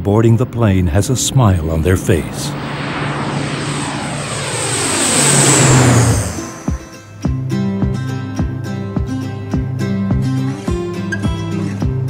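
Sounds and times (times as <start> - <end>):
turboprop plane passing overhead: 0.5 - 7.5.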